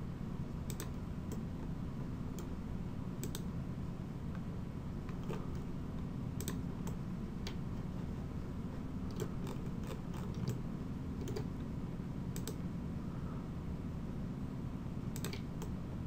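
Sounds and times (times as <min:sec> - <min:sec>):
steady low hum: 0:00.0 - 0:16.0
mouse and keyboard clicks: 0:09.1 - 0:10.6, 0:15.2 - 0:15.8.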